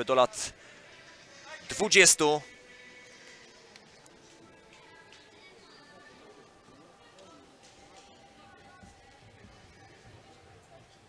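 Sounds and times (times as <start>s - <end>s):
quiet music: 0.0s - 11.0s.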